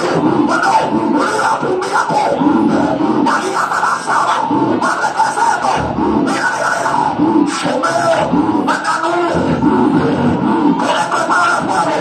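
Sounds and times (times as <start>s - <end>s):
congregation praying aloud: 0.0s - 12.0s
loud music: 0.0s - 12.0s.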